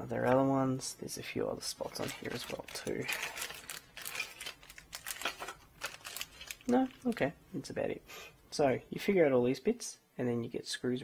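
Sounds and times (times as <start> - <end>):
plastic bag crinkling: 1.7 - 7.3.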